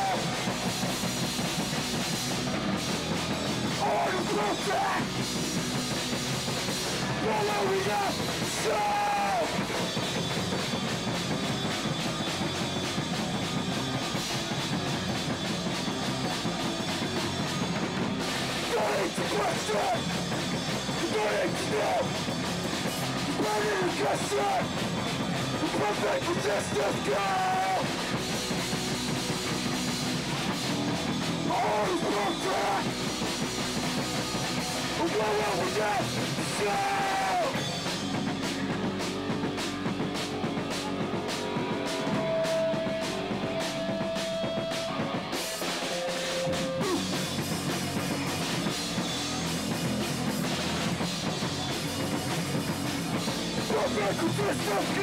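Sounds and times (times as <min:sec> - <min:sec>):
bass guitar: 0:00.0 - 0:55.0
drum kit: 0:00.0 - 0:55.0
electric guitar: 0:00.0 - 0:55.0
person shouting vocals: 0:03.8 - 0:05.1, 0:07.2 - 0:09.6, 0:25.6 - 0:27.9, 0:31.5 - 0:32.9, 0:35.0 - 0:37.6.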